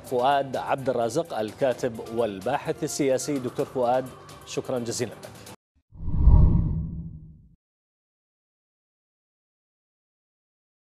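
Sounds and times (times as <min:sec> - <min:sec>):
deep whoosh: 0:06.0 - 0:07.4.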